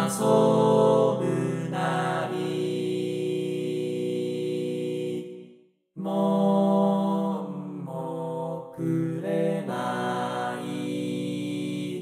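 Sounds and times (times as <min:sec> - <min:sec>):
synthesized male chorus singing: 0:00.0 - 0:12.0.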